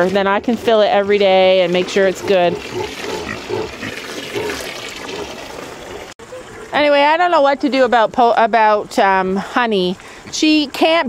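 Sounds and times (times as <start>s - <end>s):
pig grunting: 0.3s - 6.7s
hose water splashing into pool: 1.3s - 7.2s.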